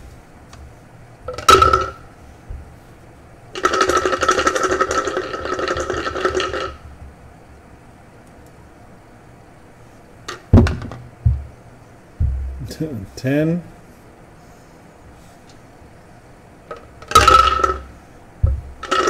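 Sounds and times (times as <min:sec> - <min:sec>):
dice rattling in glass: 0:03.6 - 0:06.8, 0:17.0 - 0:17.9
glass knocked on table: 0:12.2 - 0:12.6.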